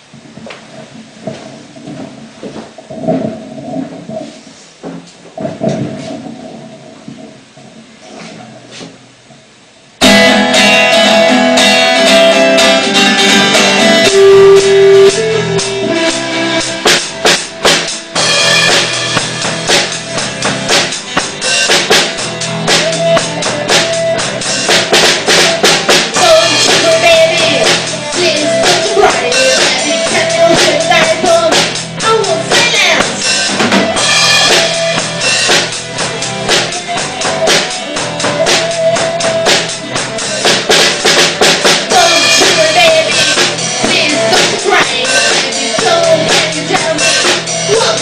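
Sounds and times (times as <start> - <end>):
drum kit: 0.0 - 48.0
quiet rock intro: 10.0 - 48.0
rock guitars: 10.0 - 48.0.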